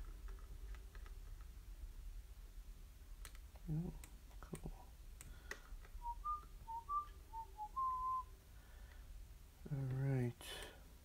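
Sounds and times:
person whistling a tune: 6.0s - 8.3s.

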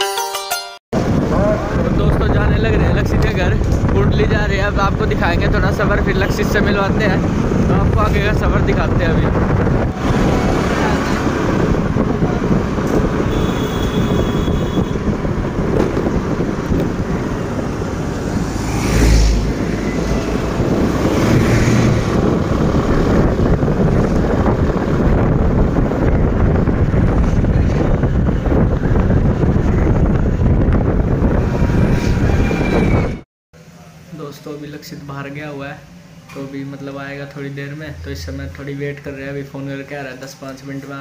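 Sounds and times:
wind and road noise: 0.9s - 33.3s.

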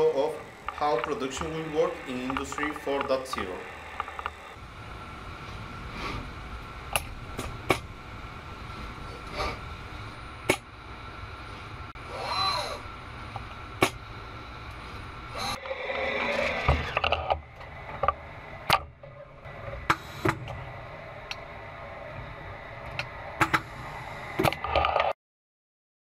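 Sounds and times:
motor whine: 0.0s - 24.8s
machinery hum: 0.0s - 25.0s.

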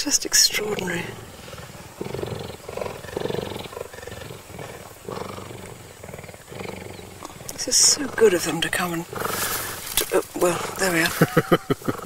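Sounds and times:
cheetah purring: 0.0s - 12.0s.

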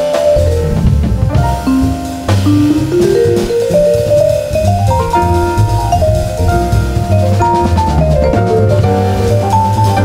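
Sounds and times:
drum kit cymbals: 0.0s - 10.0s
vibraphone line climbing: 0.0s - 10.0s
walking double bass: 0.0s - 10.0s.

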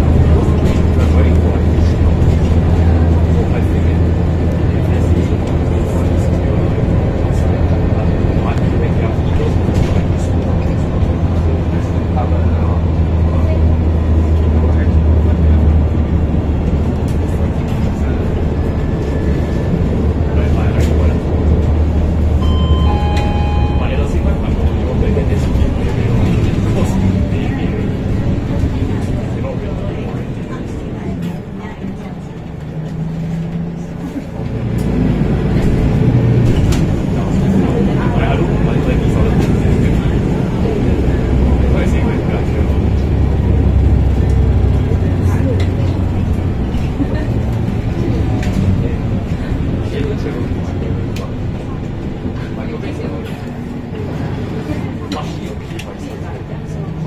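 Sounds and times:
bus diesel engine rumble: 0.0s - 57.0s
passenger chatter: 0.0s - 57.0s
road noise: 0.0s - 57.0s
short electronic chime: 22.4s - 24.4s.

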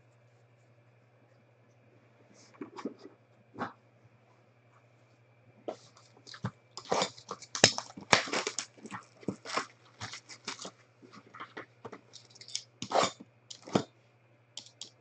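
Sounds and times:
packaging crinkling and ripping: 6.3s - 10.7s.

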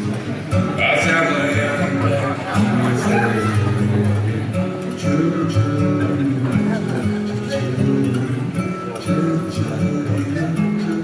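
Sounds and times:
acoustic guitar picking: 0.0s - 11.0s
man singing: 0.8s - 11.0s.

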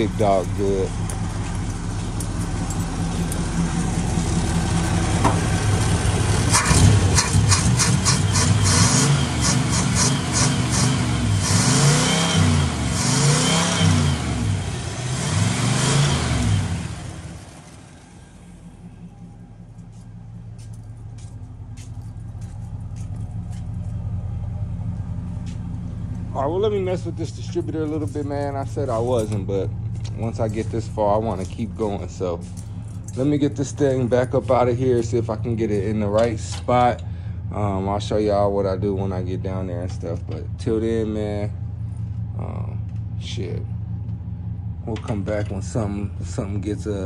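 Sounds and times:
car engine running and revving: 0.0s - 47.0s.

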